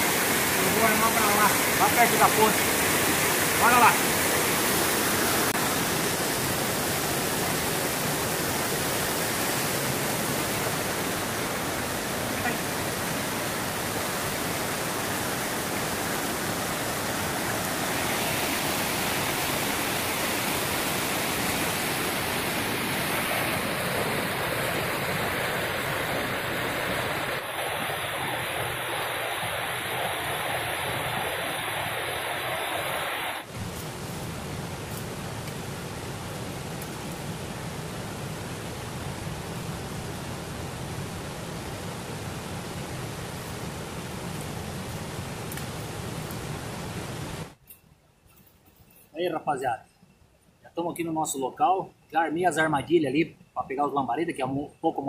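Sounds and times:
river water rushing over rocks: 0:00.0 - 0:47.6.

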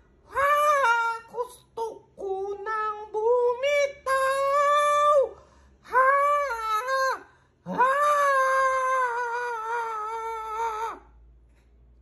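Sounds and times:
woman singing long wordless notes: 0:00.3 - 0:11.1.

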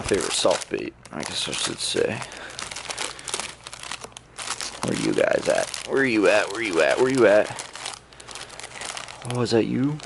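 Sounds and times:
plastic packs crinkling: 0:00.0 - 0:10.0.

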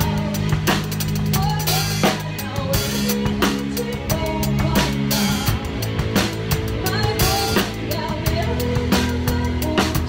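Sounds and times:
drum kit played live: 0:00.0 - 0:10.0.

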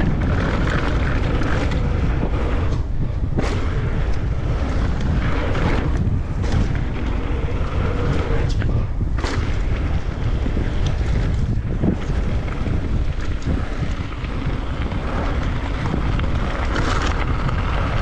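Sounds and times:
bike clicks and rattles: 0:00.0 - 0:18.0
tyres rolling on gravel: 0:00.0 - 0:18.0
wind rushing over microphone: 0:00.0 - 0:18.0.

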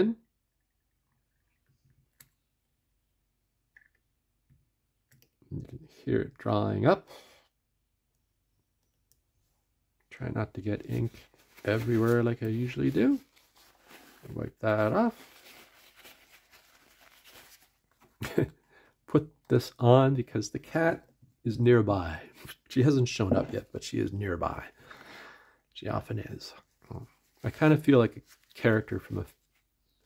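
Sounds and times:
paper towel rustling: 0:10.8 - 0:18.3, 0:27.1 - 0:29.8.

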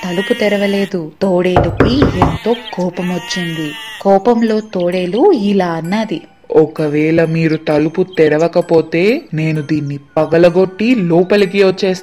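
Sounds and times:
goat bleating: 0:00.0 - 0:01.0, 0:01.9 - 0:04.1
person speaking: 0:00.0 - 0:12.0.

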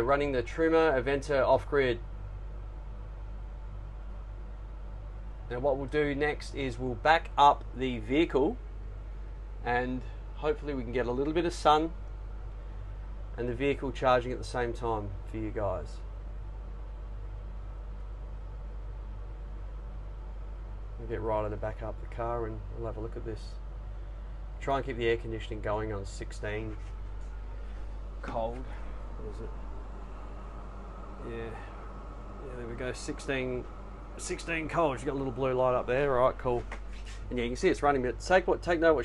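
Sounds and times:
air conditioner humming: 0:00.0 - 0:39.0.

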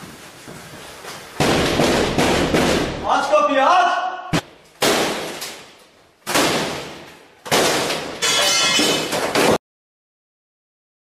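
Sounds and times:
heavy bangs on a door: 0:01.4 - 0:03.0.

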